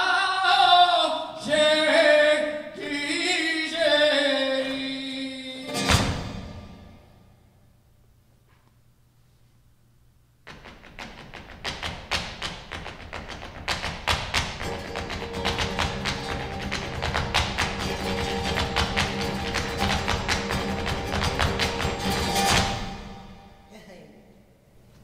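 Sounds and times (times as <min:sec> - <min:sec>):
shoes stamping on stage: 0:10.5 - 0:23.1.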